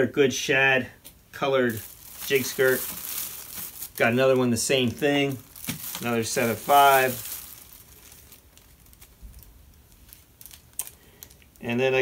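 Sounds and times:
plastic bag crinkling: 1.7 - 11.8.

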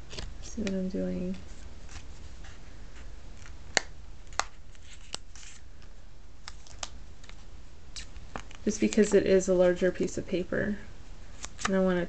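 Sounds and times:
low steady hum: 0.0 - 12.0
paper rustling: 4.3 - 5.7.

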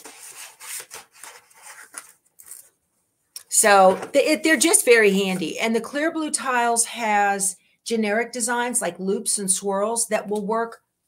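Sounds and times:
items rustling on a table: 0.0 - 2.8.

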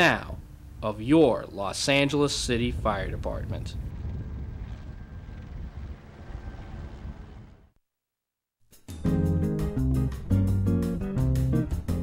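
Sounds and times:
outdoor low rumble: 2.4 - 7.8.

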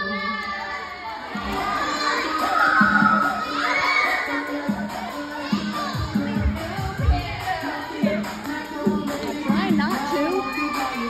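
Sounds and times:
children shouting and cheering: 0.0 - 11.0
dance music with thumping bass: 4.6 - 10.4.

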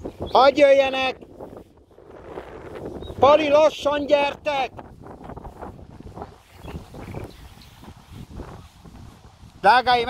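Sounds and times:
wind buffeting microphone: 0.0 - 10.0.

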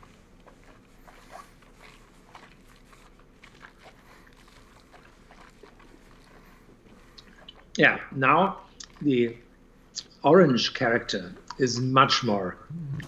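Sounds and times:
low background hum: 0.0 - 13.0
lip smacks and mouth clicks: 0.1 - 7.8, 8.7 - 9.0.

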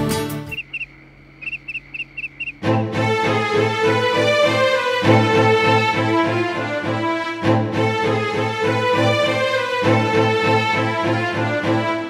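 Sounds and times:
background music: 0.0 - 0.6, 2.6 - 12.0
cricket chirps: 0.0 - 3.2
faint low hum: 0.5 - 2.8.

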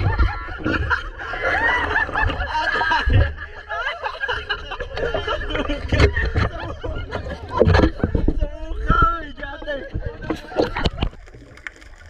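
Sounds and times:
people laughing and snickering: 0.0 - 8.1
water splashing: 10.2 - 12.0.

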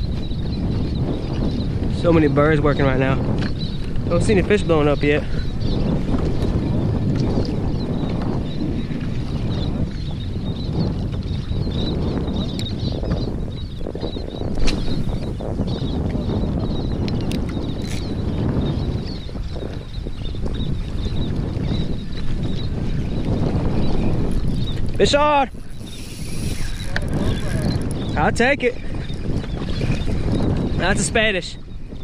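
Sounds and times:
wind buffeting microphone: 0.0 - 32.0
water chop against hull: 14.4 - 18.2
fishing reel clicks: 17.2 - 18.0, 25.6 - 27.9.

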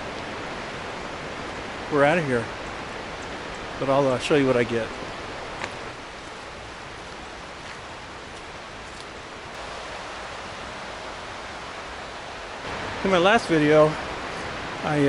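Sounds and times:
stream water rushing: 0.0 - 15.0.

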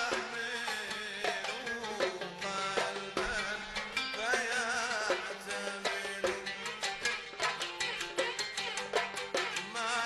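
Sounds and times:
percussion beat: 0.0 - 10.0.

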